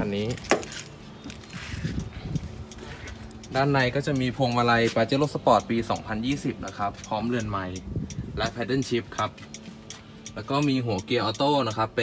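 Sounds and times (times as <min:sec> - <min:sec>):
light metallic clinks: 0:00.1 - 0:07.8.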